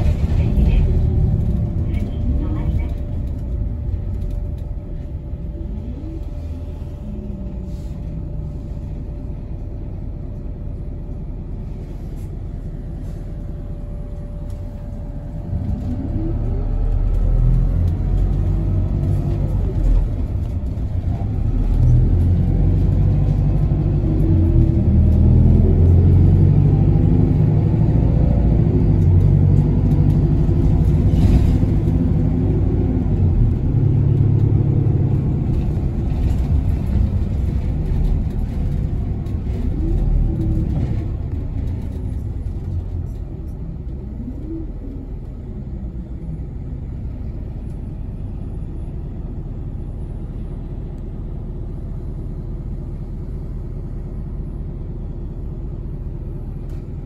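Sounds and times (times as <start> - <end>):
bus engine and road noise: 0.0 - 57.0.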